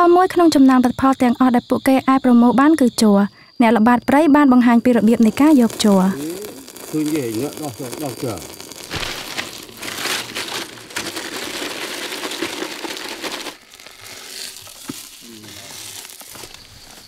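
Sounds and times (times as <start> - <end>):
leaves rustling: 6.0 - 17.0.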